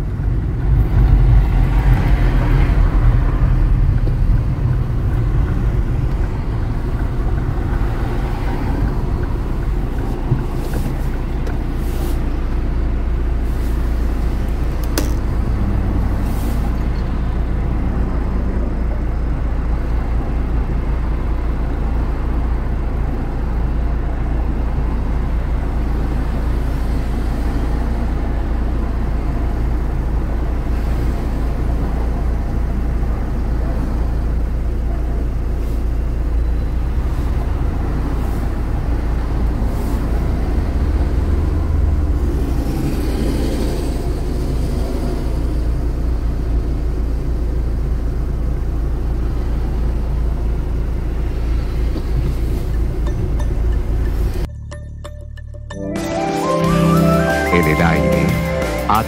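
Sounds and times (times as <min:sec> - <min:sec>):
cars driving past: 0:00.0 - 0:54.5, 0:55.8 - 0:59.0
traffic rumble: 0:00.0 - 0:54.8, 0:56.7 - 0:59.0.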